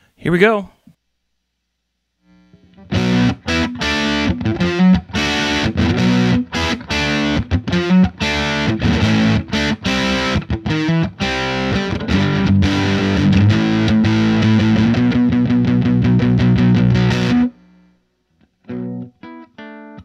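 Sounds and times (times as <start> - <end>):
fuzz electric guitar chords: 2.3 - 17.9, 18.7 - 20.0.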